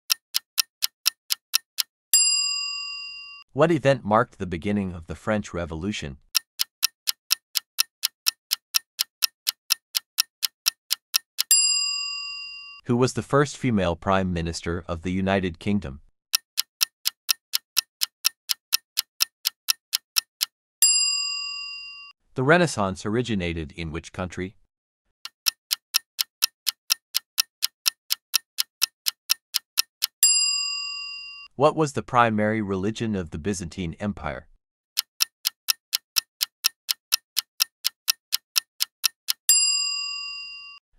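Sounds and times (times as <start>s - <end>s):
clock ticking: 0.0s - 1.9s, 6.2s - 11.6s, 16.3s - 20.6s, 25.2s - 30.3s, 35.0s - 39.6s
bell ding: 2.2s - 3.4s, 11.5s - 12.8s, 20.8s - 22.1s, 30.2s - 31.5s, 39.5s - 40.8s.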